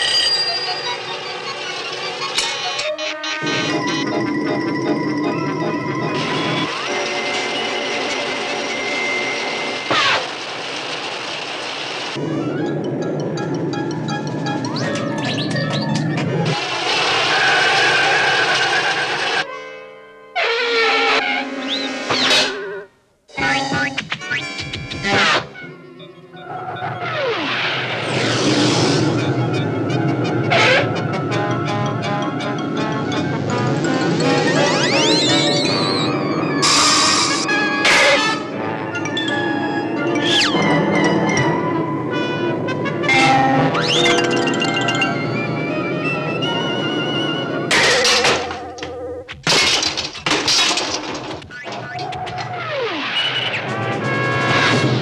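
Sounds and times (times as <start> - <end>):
cartoon music score: 0.0 - 10.2, 12.2 - 16.7, 18.0 - 49.2
falling whistle-like tone: 34.6 - 37.5
crashing clattering impacts: 47.7 - 52.6.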